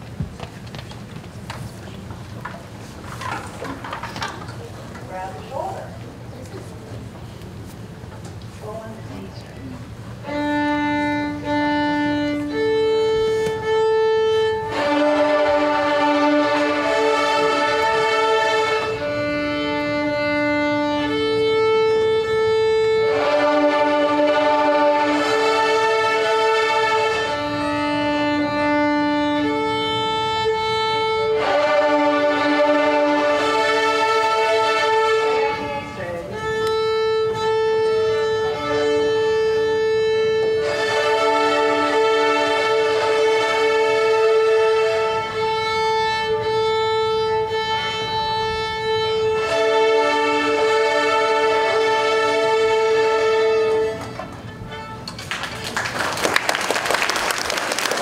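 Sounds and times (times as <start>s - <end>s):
knocks and clicks of violins: 0.1s - 5.1s, 11.5s - 21.2s, 36.4s - 38.0s, 51.7s - 55.6s
murmur of children's voices: 3.2s - 11.2s
group of violins bowing long notes: 10.2s - 56.2s.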